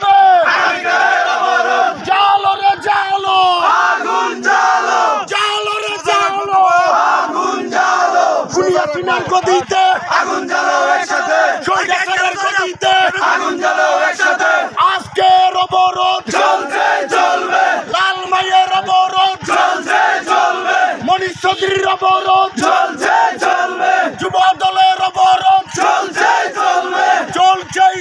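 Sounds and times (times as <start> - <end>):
crowd of men shouting in unison: 0.0 - 21.1, 21.7 - 28.0.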